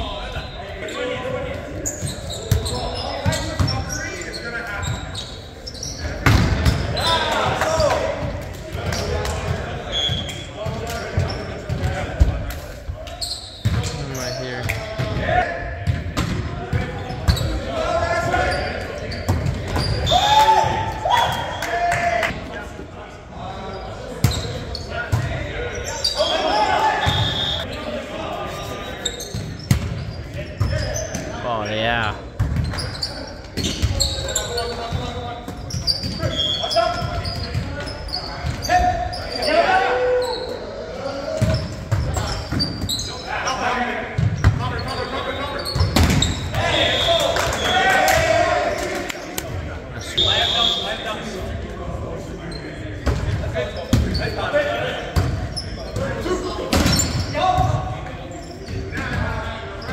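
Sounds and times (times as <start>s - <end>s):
sneakers squeaking on hardwood: 0.4s - 9.1s, 13.1s - 15.2s, 16.8s - 17.6s, 28.6s - 31.4s, 32.3s - 39.7s, 41.3s - 43.6s, 44.2s - 48.3s, 55.2s - 59.9s
players shouting: 17.4s - 22.4s, 25.0s - 28.8s, 46.5s - 49.4s.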